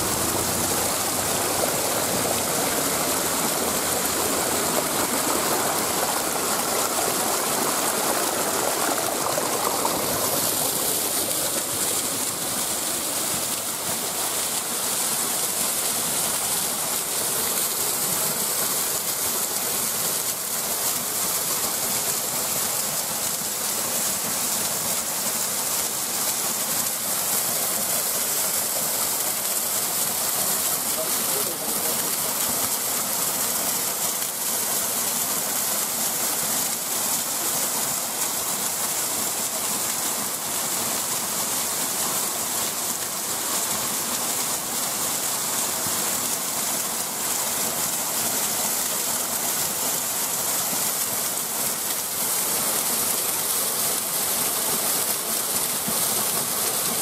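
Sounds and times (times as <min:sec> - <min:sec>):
small waterfall rushing: 0:00.0 - 0:57.0.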